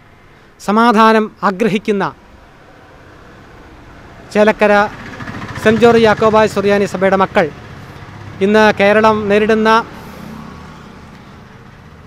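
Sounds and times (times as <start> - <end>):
distant road traffic: 0.0 - 12.0
man speaking into microphones: 0.6 - 2.2, 5.6 - 7.6, 8.4 - 9.9.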